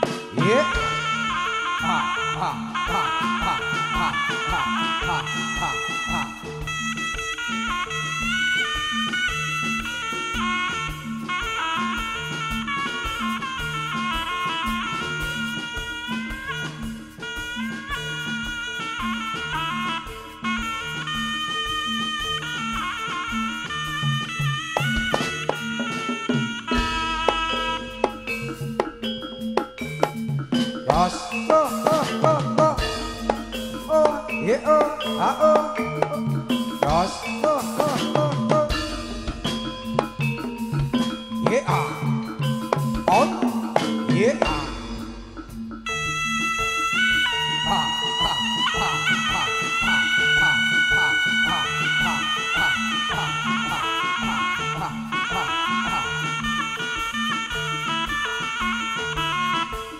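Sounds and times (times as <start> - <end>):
percussion beat: 0.0 - 59.9
shawm wavering melody: 0.0 - 59.9.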